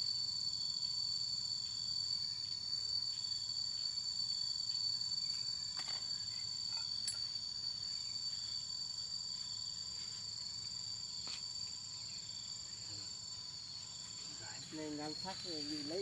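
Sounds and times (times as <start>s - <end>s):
shrill insect chorus: 0.0s - 16.0s.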